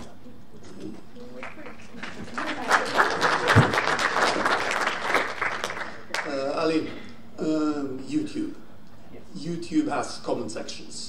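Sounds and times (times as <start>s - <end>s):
audience applause: 1.3s - 6.3s.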